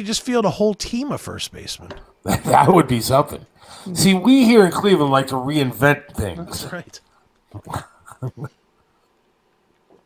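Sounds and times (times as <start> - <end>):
man chuckling softly: 7.5 - 8.7.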